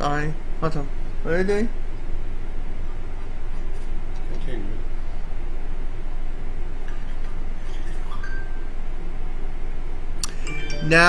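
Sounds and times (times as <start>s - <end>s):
low room rumble: 0.0s - 11.0s
faint high tone: 10.4s - 11.0s.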